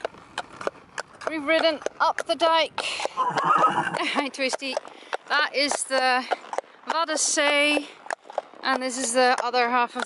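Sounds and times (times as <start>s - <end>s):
horse hooves on paved road: 0.0s - 10.0s
horse whinnying: 3.0s - 4.1s.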